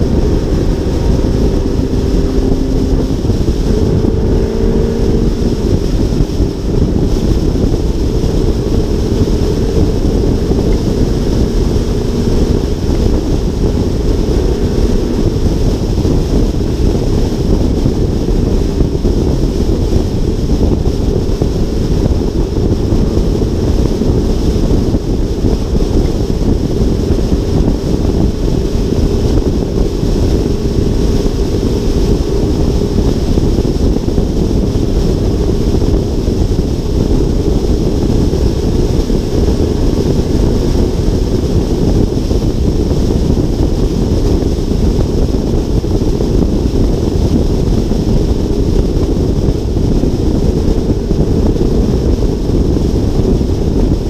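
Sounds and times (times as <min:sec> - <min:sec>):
wind roar on camera: 0:00.0 - 0:54.0.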